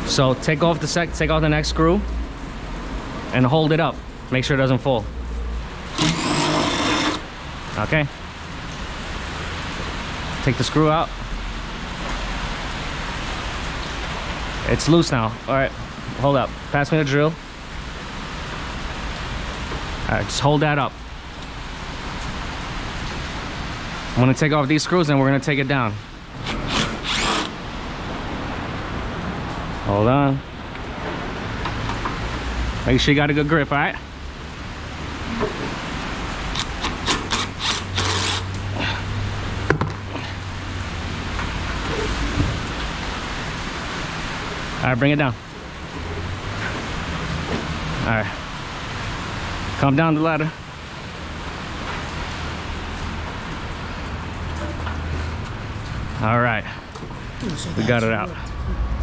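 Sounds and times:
cordless drill whining: 0:05.9 - 0:07.2, 0:26.4 - 0:27.6, 0:36.6 - 0:38.5
man's voice: 0:57.5 - 0:58.4.

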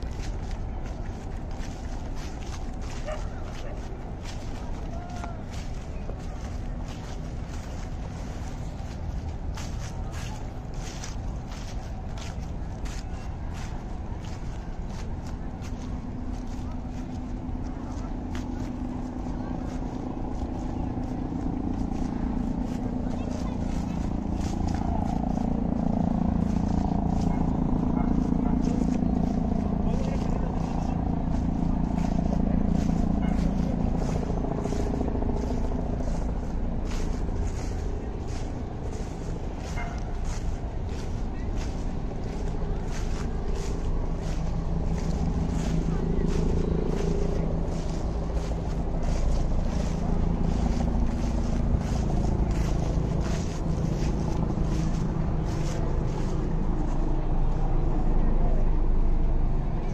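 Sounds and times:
indistinct voices: 0:00.0 - 0:58.7
footsteps crunching dry leaves: 0:00.0 - 0:59.9
low city traffic rumble: 0:00.0 - 0:59.9.

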